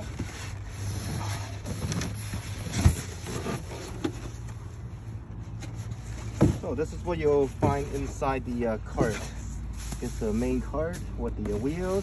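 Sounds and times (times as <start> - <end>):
styrofoam scraping and rustling: 0.0 - 4.6, 5.5 - 12.0.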